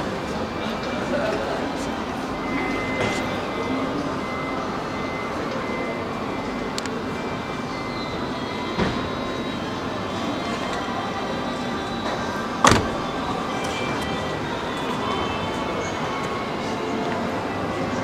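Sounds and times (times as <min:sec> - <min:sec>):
busy exhibition hall noise: 0:00.0 - 0:18.0
faint music: 0:00.0 - 0:18.0.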